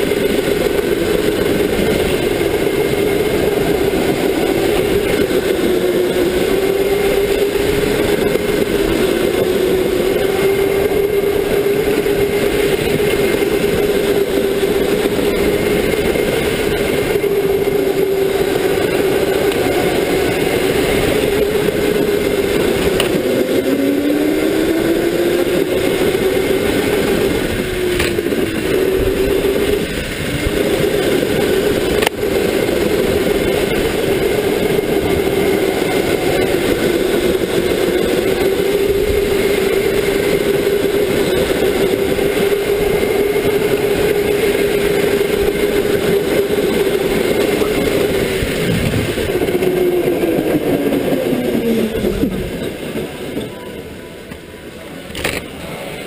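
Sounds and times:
lower whine rising in pitch: 0:00.0 - 0:52.7
electric go-kart motor whining: 0:00.0 - 0:53.4.

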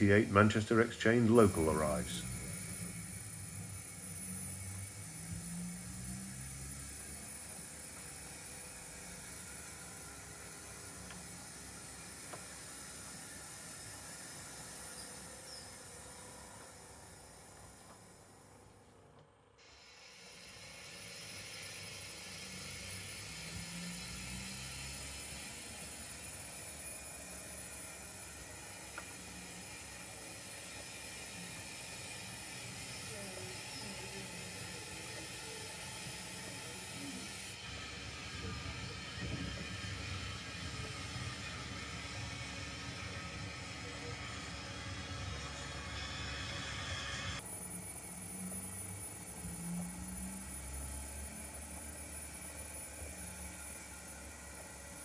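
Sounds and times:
steam hissing: 0:00.0 - 0:18.7, 0:19.6 - 0:55.0.

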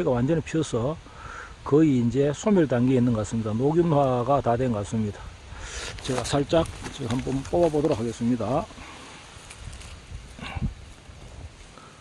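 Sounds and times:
dry leaves rustling and crackling: 0:05.8 - 0:11.8.

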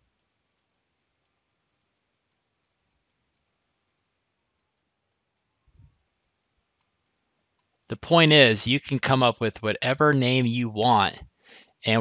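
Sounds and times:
computer mouse clicks: 0:00.0 - 0:04.0, 0:04.6 - 0:08.0.

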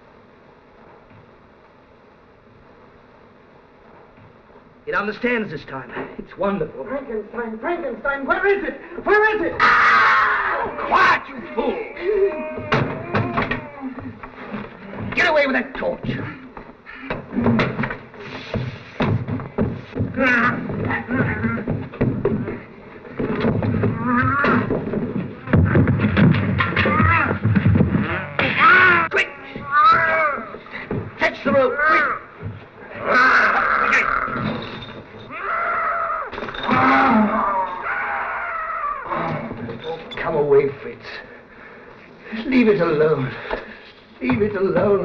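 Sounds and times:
grunts and cries: 0:09.6 - 0:15.2, 0:16.0 - 0:18.6, 0:20.0 - 0:39.8
scuffle thumps: 0:12.4 - 0:32.9.

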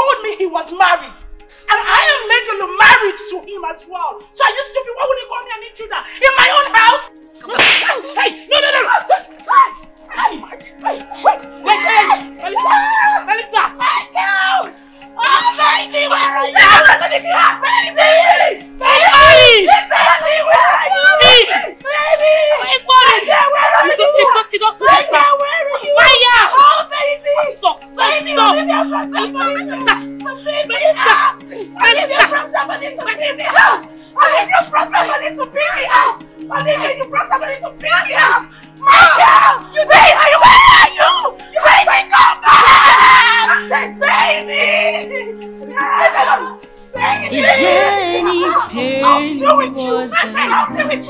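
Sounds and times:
women screaming and shouting: 0:08.7 - 0:51.0.

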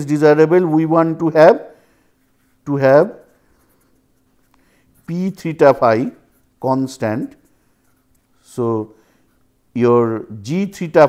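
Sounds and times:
man speaking: 0:00.0 - 0:01.8, 0:02.6 - 0:03.3, 0:05.0 - 0:07.4, 0:08.4 - 0:09.0, 0:09.7 - 0:11.0
faint steady hum: 0:00.0 - 0:11.0.

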